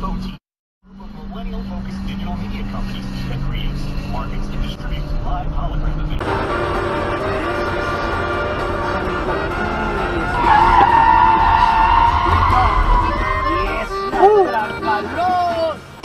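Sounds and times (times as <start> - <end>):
vehicle engine droning: 0.0 - 16.0
music: 6.2 - 15.9.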